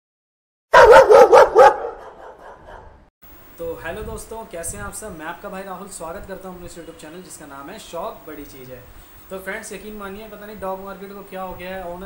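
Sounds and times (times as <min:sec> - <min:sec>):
dog barking: 0:00.7 - 0:03.0.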